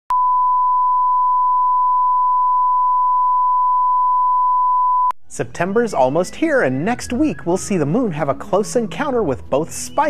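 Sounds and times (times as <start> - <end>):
steady reference tone beep: 0.1 - 5.1.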